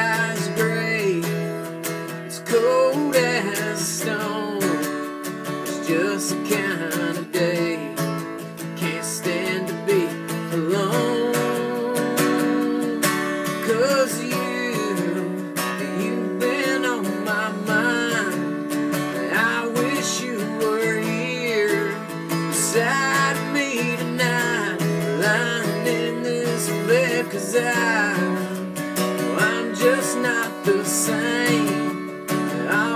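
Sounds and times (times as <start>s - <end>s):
acoustic guitar strumming: 0.0s - 32.9s
person singing: 0.0s - 32.9s.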